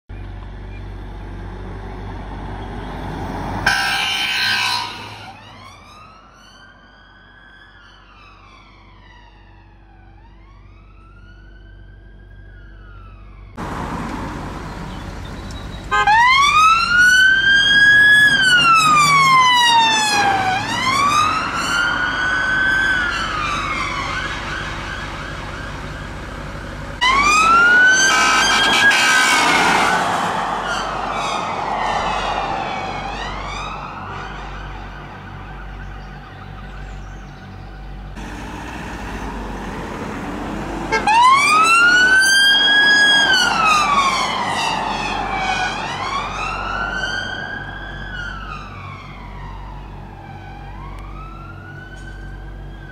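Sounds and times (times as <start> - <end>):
police sirens wailing: 3.0 - 37.0, 39.3 - 52.9
rapid harsh siren burst: 3.6 - 10.9, 15.9 - 25.8, 27.0 - 35.9, 40.9 - 51.8.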